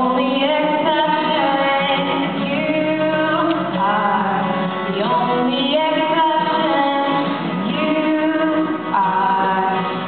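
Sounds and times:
strummed acoustic guitar: 0.0s - 10.0s
woman singing into microphone: 0.0s - 10.0s.

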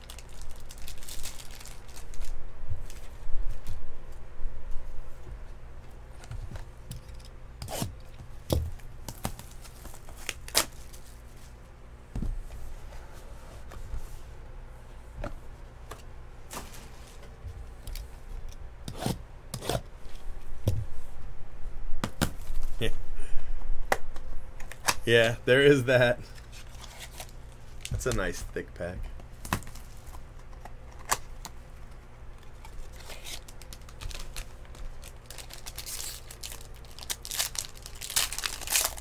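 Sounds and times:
cardboard rustling and scraping: 16.5s - 17.7s.

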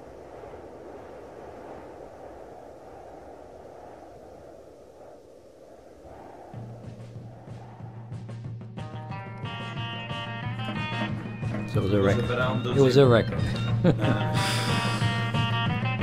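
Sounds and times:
low rumbling noise: 0.0s - 10.4s.

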